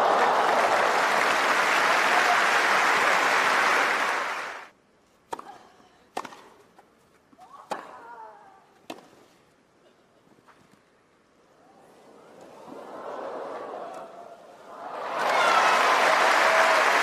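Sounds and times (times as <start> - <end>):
crowd applauding: 0.0 - 4.7, 14.7 - 17.0
racket striking tennis ball: 5.3 - 6.6.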